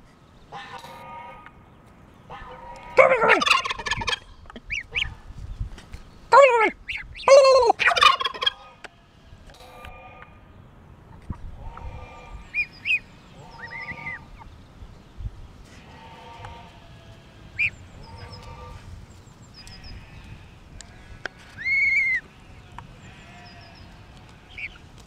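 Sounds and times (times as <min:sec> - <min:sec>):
poultry drawn-out calls: 0:00.5 - 0:01.6, 0:02.3 - 0:05.2, 0:06.9 - 0:10.5, 0:11.4 - 0:14.5, 0:15.7 - 0:18.9, 0:19.6 - 0:24.9.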